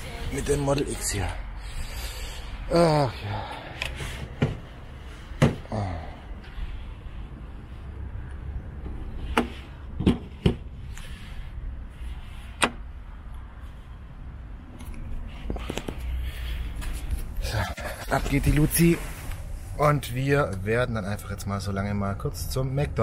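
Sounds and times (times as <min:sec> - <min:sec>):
steady low rumble: 0:00.0 - 0:23.0.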